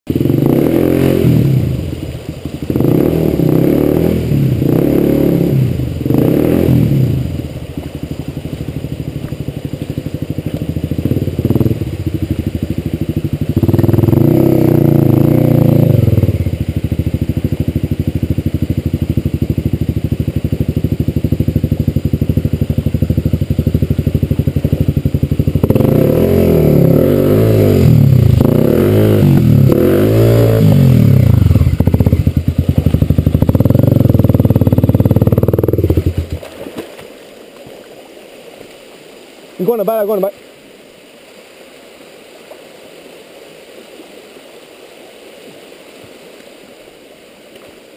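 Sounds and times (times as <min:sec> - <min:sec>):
dirt bike engine revving: 0:00.1 - 0:36.5.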